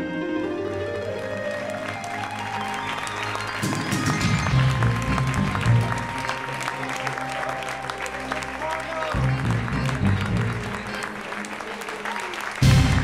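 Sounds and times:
audience applause: 0:00.0 - 0:13.0
music playing: 0:00.0 - 0:13.0.

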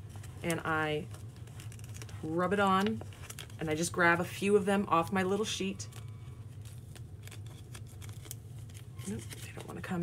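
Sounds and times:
steady low hum: 0:00.0 - 0:10.0
transfer paper crackling: 0:00.0 - 0:10.0.

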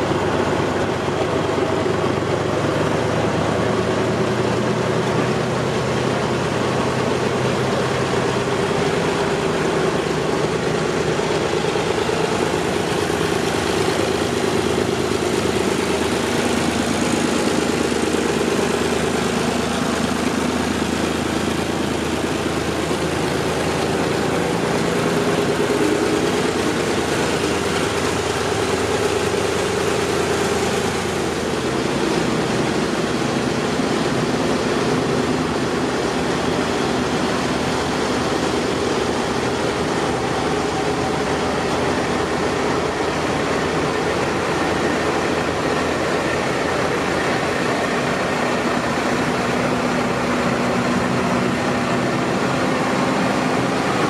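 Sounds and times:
tractor engine running at low revs: 0:00.0 - 0:54.0.

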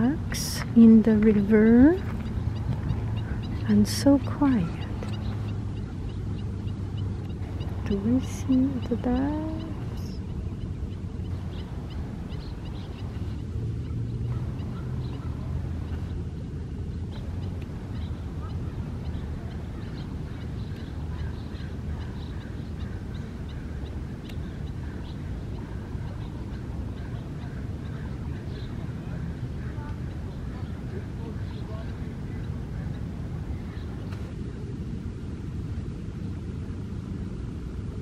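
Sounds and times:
steady low rumble: 0:00.0 - 0:38.0
geese calling: 0:01.3 - 0:16.1, 0:17.1 - 0:33.2.

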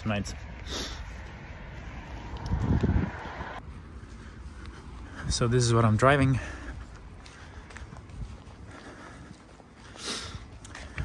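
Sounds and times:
wind buffeting microphone: 0:01.1 - 0:05.5, 0:06.2 - 0:09.4.

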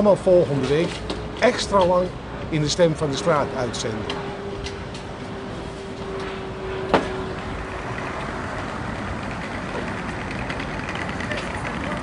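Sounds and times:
engine-like hum: 0:00.0 - 0:12.0
street traffic passing: 0:00.0 - 0:12.0.

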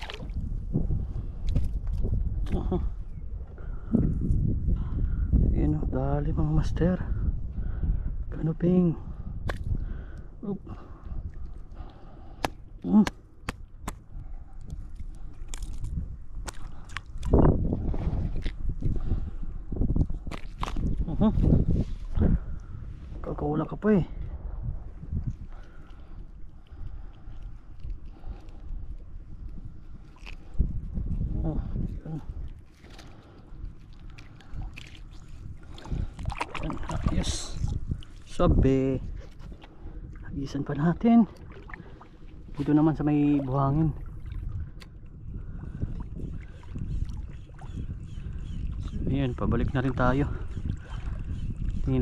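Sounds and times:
seawater sloshing and splashing: 0:00.0 - 0:00.7, 0:32.5 - 0:38.4, 0:39.0 - 0:44.8, 0:49.6 - 0:51.8.

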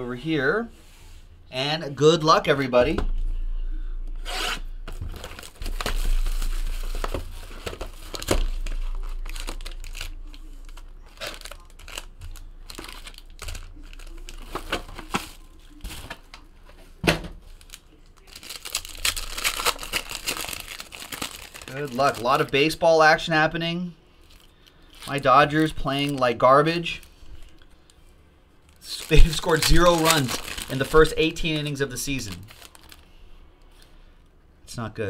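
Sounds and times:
foil wrapper crinkling: 0:04.9 - 0:16.4, 0:17.4 - 0:23.1, 0:24.2 - 0:27.9, 0:28.6 - 0:33.2.

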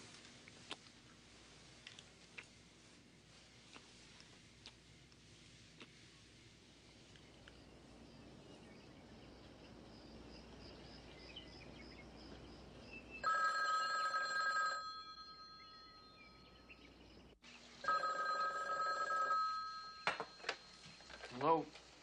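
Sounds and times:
telephone ringing: 0:13.2 - 0:16.2, 0:17.8 - 0:21.4.

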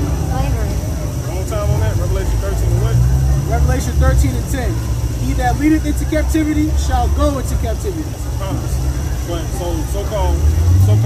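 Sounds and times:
other voices: 0:00.0 - 0:11.0
man talking: 0:01.4 - 0:11.0.

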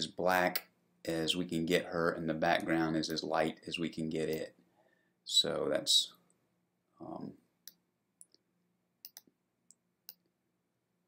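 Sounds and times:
computer mouse clicks: 0:09.0 - 0:09.4.

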